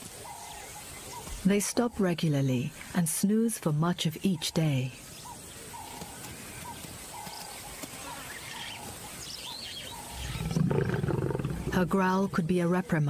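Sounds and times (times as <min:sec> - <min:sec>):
lioness growling: 0:09.9 - 0:12.4.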